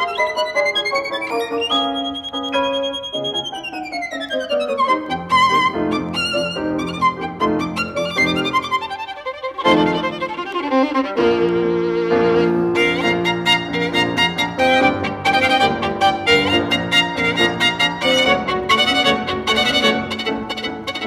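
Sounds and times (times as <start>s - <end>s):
piano accompaniment: 0.0s - 21.0s
solo violin melody: 0.0s - 21.0s.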